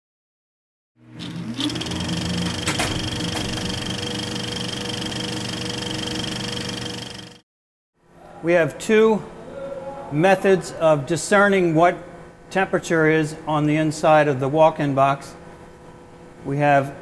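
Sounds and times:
machine-like whirring: 0:01.2 - 0:07.4
rising whine: 0:01.3 - 0:07.4.

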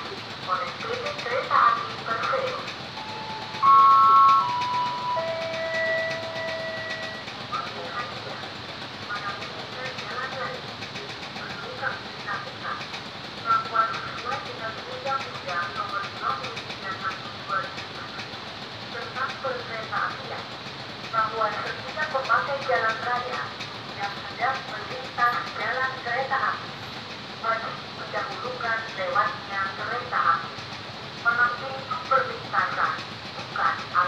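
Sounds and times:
freight train passing: 0:00.0 - 0:34.0
crossing warning bell chiming: 0:00.1 - 0:08.4
train horn blowing: 0:03.1 - 0:07.3.

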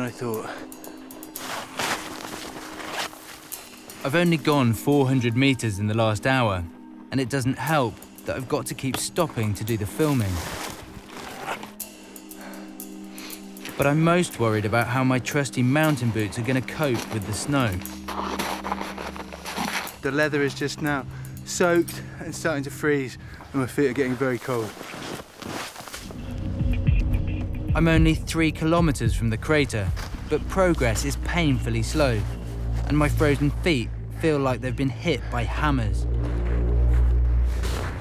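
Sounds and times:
background music drone: 0:00.0 - 0:38.0
boots crunching in deep snow: 0:01.3 - 0:04.5, 0:08.8 - 0:11.8, 0:15.6 - 0:20.8, 0:23.3 - 0:26.1, 0:29.8 - 0:33.9, 0:35.3 - 0:38.0.

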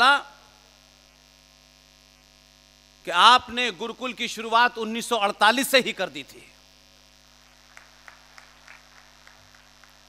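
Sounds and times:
man speaking: 0:00.0 - 0:00.4, 0:03.0 - 0:06.6
faint mains hum: 0:00.0 - 0:10.0.

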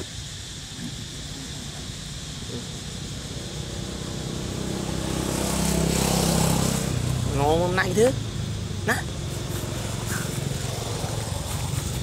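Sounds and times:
vehicle engine passing by: 0:02.5 - 0:12.0.

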